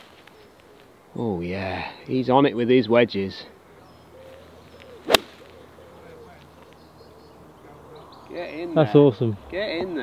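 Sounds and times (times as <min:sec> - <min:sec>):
golf club striking ball: 0:05.1 - 0:05.5.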